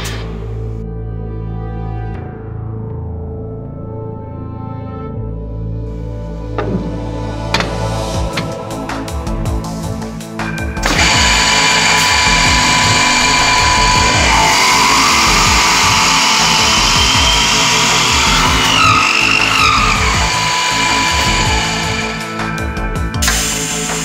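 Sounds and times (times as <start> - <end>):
background music: 0.0 - 24.0
drill bits whining cutting wood: 10.8 - 24.0.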